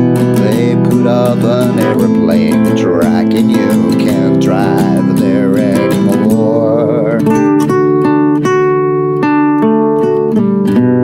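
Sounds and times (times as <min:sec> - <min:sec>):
man singing: 0:00.0 - 0:07.8
nylon-string guitar strummed: 0:00.0 - 0:11.0.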